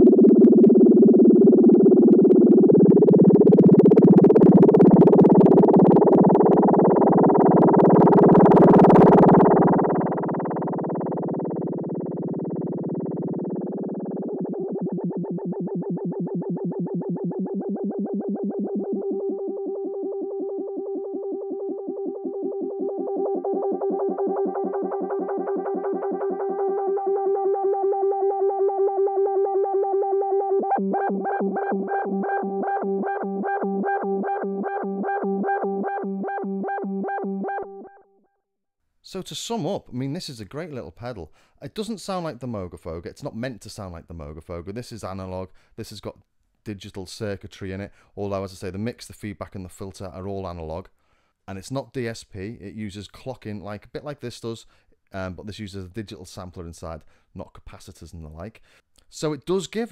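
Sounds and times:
synthesizer drone wavering: 0.0s - 38.0s.

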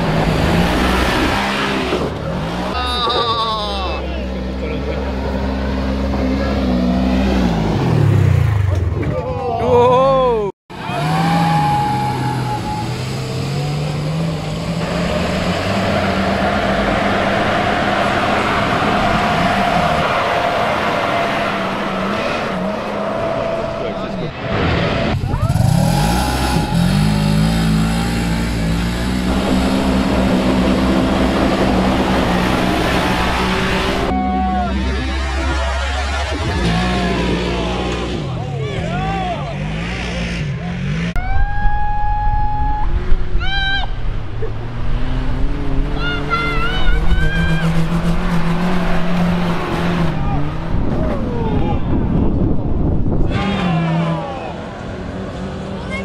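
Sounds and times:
off-road engines revving: 0.0s - 56.0s.

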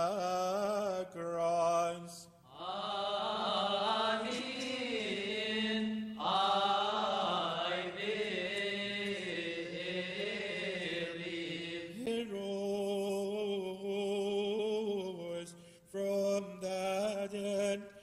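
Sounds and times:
man chanting a prayer: 0.0s - 2.3s.

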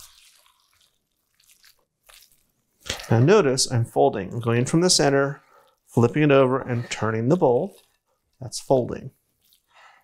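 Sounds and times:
spatula squishing wet mixture: 0.0s - 10.0s.

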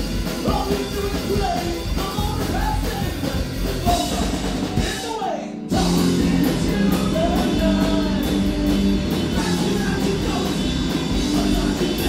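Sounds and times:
drum kit: 0.0s - 12.0s
electric guitars: 0.0s - 12.0s
man singing lead vocal: 0.3s - 12.0s.

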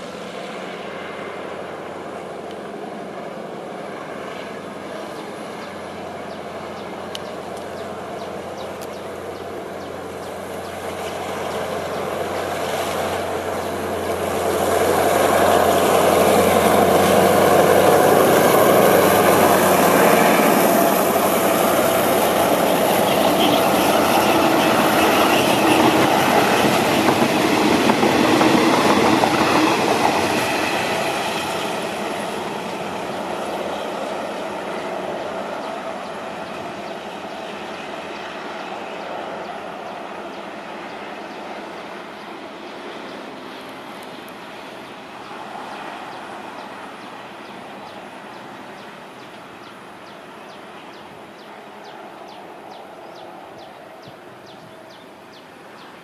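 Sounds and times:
train wheels clattering over rails: 14.4s - 33.3s.

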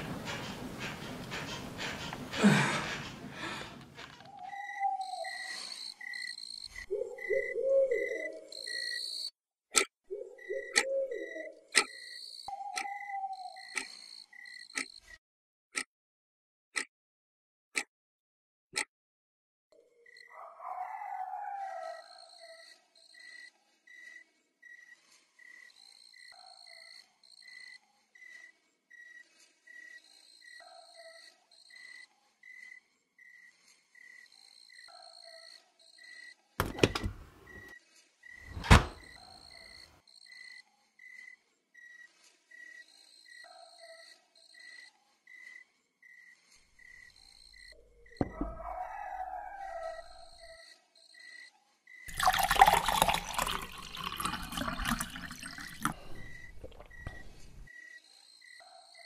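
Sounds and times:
wall clock ticking: 0.0s - 3.8s
frogs croaking: 4.5s - 9.3s, 10.2s - 15.2s
crickets chirping: 50.3s - 58.6s.

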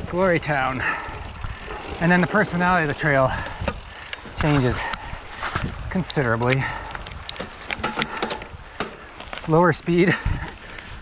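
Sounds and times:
bike tyres on leafy dirt trail: 0.1s - 8.2s
clicks and knocks from bike: 0.4s - 5.7s, 6.4s - 9.5s.

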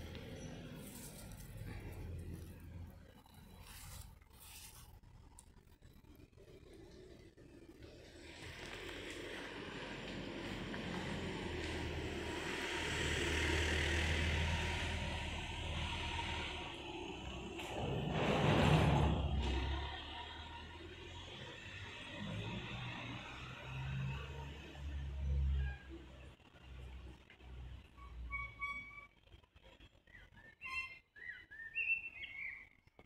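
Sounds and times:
cars passing: 0.0s - 4.7s, 6.4s - 28.0s.

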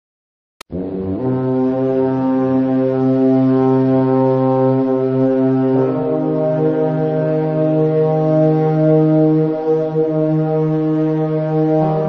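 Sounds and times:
loud low droning note: 0.7s - 12.0s.

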